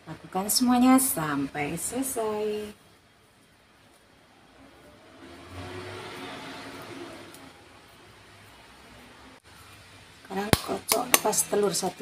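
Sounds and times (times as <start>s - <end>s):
woman's voice: 0.0s - 2.8s, 10.3s - 12.0s.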